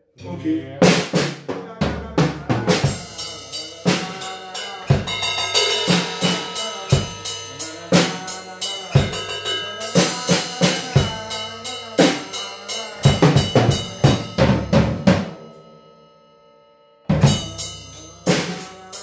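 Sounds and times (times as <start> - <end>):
drum kit groove: 0.8 - 15.7, 17.1 - 19.0.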